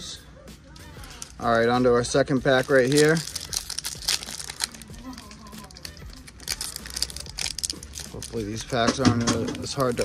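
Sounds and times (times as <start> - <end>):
foil wrapper crinkling: 0.8 - 10.0.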